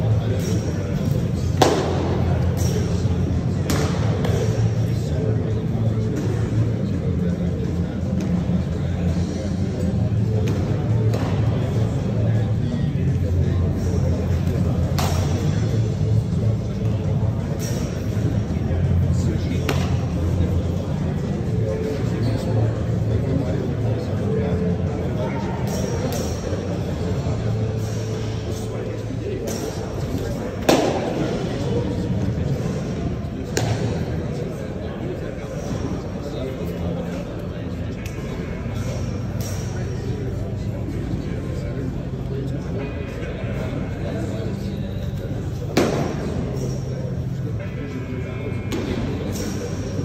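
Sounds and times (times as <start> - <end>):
low indoor hall din: 0.0 - 50.0.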